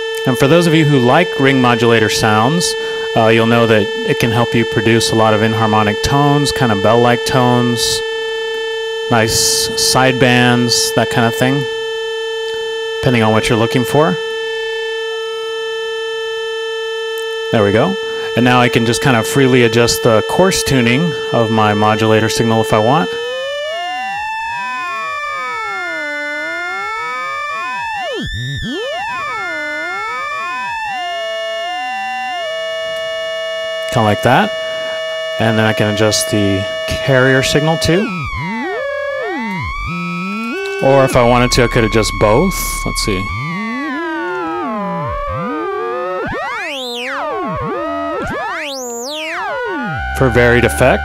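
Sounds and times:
gliding ring-modulated synth tones: 0:20.0 - 0:33.9, 0:36.2 - 0:51.0.

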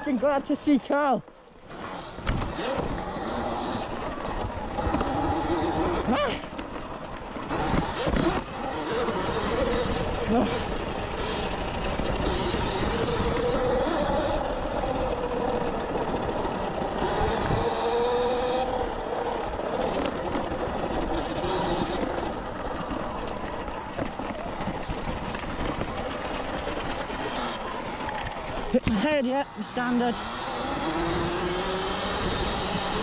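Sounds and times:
tyre and wind noise: 0:00.0 - 0:33.0
electric motor whine: 0:01.6 - 0:33.0.

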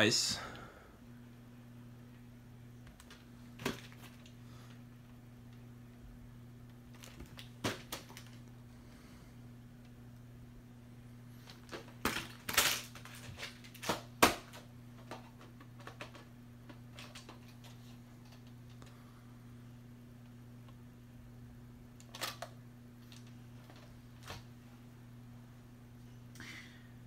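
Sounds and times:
steady low hum: 0:00.0 - 0:27.0.

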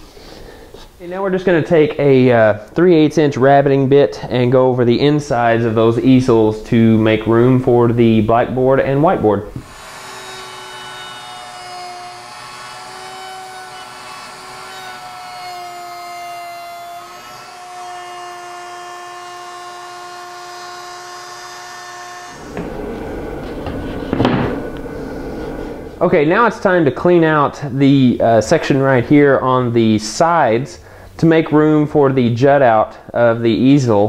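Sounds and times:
router whining: 0:09.4 - 0:26.0
rough noise with low rumble: 0:22.4 - 0:29.0.

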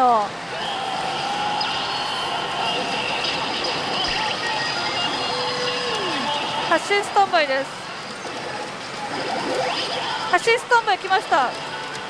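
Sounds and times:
pachinko parlour din: 0:00.0 - 0:12.0
pachinko machine electronic music: 0:00.4 - 0:12.0.

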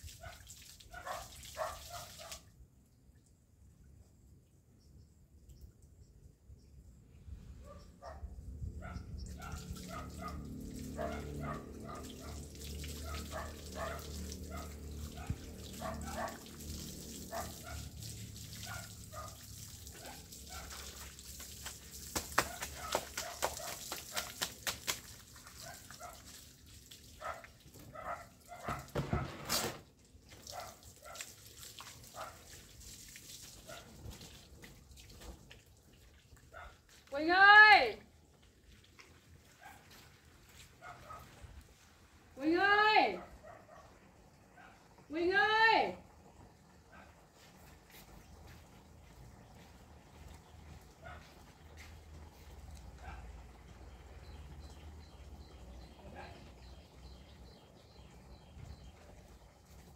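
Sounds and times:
water running from outdoor tap: 0:00.0 - 0:02.7, 0:08.9 - 0:59.9
dog barking: 0:00.2 - 0:02.5, 0:07.6 - 0:16.6, 0:17.3 - 0:18.0, 0:18.6 - 0:20.9, 0:22.4 - 0:24.4, 0:25.5 - 0:26.3, 0:27.2 - 0:29.3, 0:30.4 - 0:31.3, 0:32.1 - 0:32.5, 0:33.7 - 0:34.0, 0:36.5 - 0:36.8, 0:39.6 - 0:40.0, 0:40.8 - 0:41.4, 0:43.2 - 0:44.9, 0:46.9 - 0:47.3, 0:51.0 - 0:51.9, 0:53.0 - 0:53.4.

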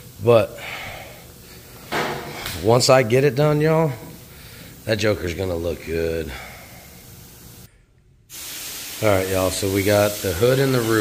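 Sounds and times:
hiss of moving air: 0:08.3 - 0:11.0.

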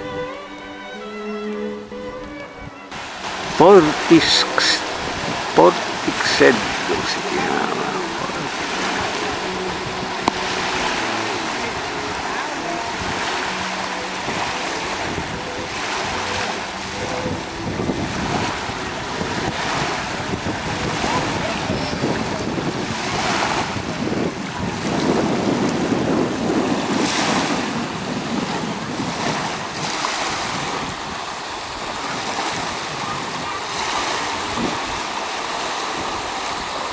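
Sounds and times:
wind buffeting microphone: 0:00.0 - 0:00.8, 0:01.5 - 0:36.9
waves washing up beach: 0:00.0 - 0:36.9.

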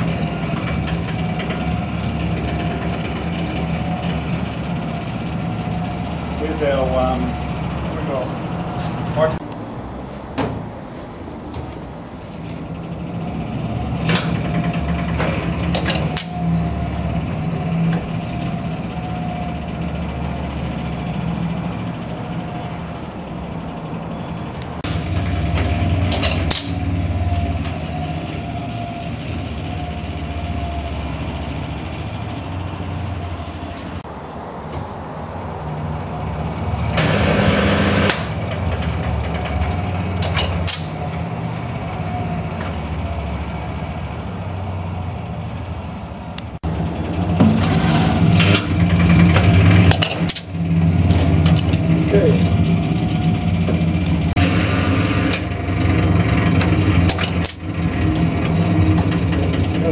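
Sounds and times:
harsh mechanical burst: 0:37.0 - 0:38.4.

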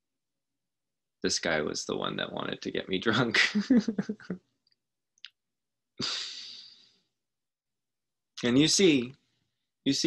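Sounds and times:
man laughing: 0:03.2 - 0:04.4.

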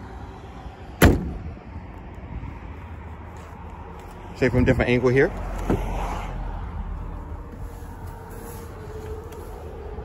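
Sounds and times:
car hood slamming shut: 0:01.0 - 0:01.4.

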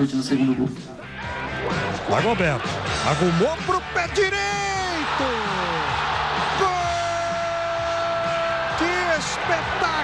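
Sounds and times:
noisy crowd background: 0:00.0 - 0:10.0
commentator excited speech: 0:02.1 - 0:10.0.

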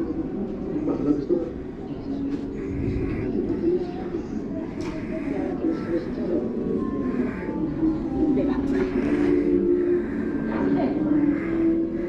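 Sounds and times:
indistinct voices from film screens: 0:00.0 - 0:12.0
steady low hum: 0:00.0 - 0:12.0.

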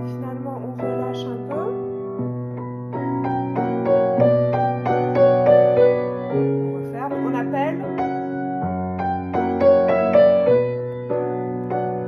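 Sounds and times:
grand piano waltz: 0:00.0 - 0:12.0.

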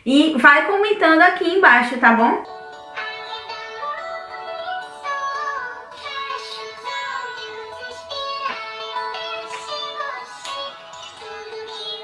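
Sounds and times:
person singing: 0:03.0 - 0:12.0.

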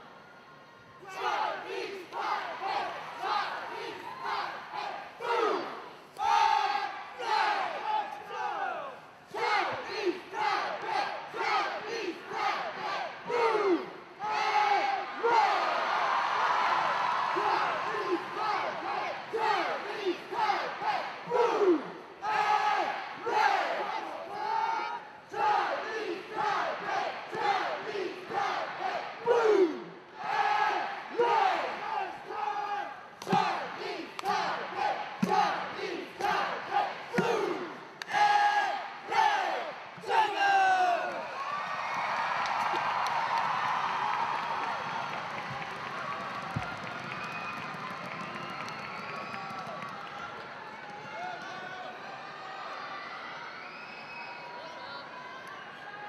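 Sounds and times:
crowd cheering: 0:00.0 - 0:56.0
squad shouting rhythmic chant: 0:01.0 - 0:41.3.

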